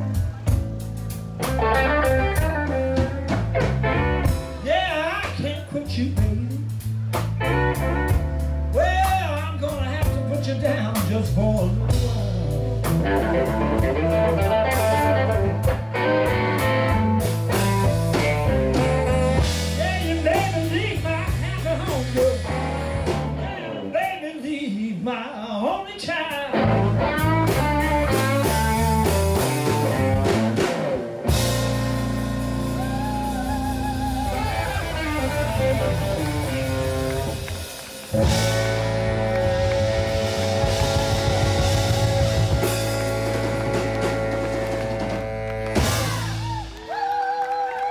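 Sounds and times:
electric guitar: 0.0 - 24.0, 26.3 - 47.9
bass guitar: 0.0 - 47.9
drums: 0.0 - 47.9.

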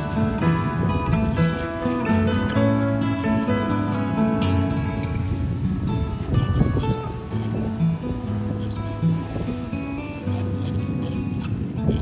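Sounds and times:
plucked acoustic guitar music: 0.0 - 12.0.

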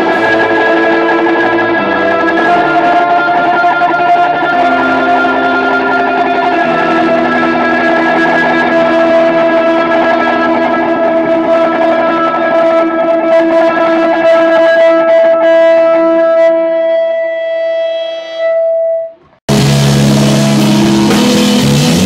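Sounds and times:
full-band rock music: 0.0 - 16.2, 19.5 - 22.0
distorted electric guitar: 0.0 - 22.0.

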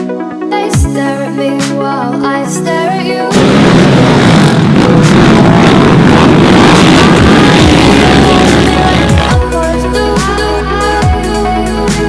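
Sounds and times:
quad engines revving: 3.4 - 9.6.

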